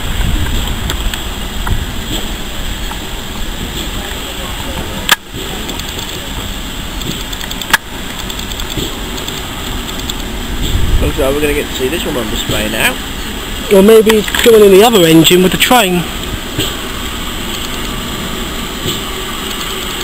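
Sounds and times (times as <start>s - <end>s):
steam locomotive rumble: 0.0s - 20.0s
sharp clicks: 5.1s - 6.3s, 7.0s - 10.8s, 17.5s - 18.0s, 18.9s - 20.0s.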